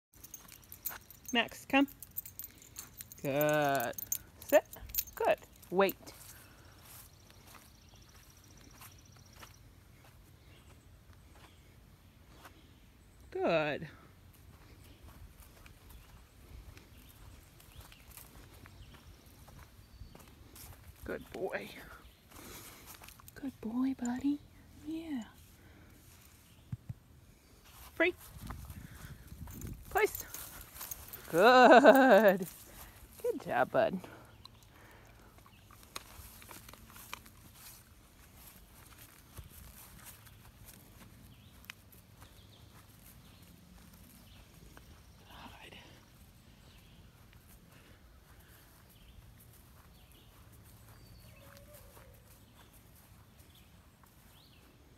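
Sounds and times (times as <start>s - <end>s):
faint footsteps through grass: 2.2s - 54.9s.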